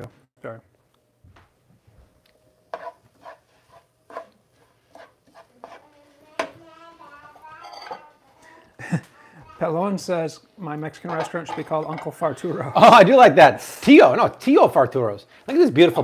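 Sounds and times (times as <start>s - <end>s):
dishes and utensils clinking: 7.4s - 8.1s, 11.0s - 12.2s.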